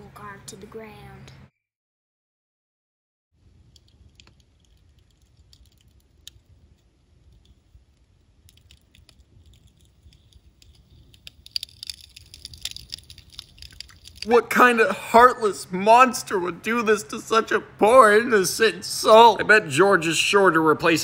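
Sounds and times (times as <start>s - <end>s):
small fire crackling: 3.4s - 19.5s.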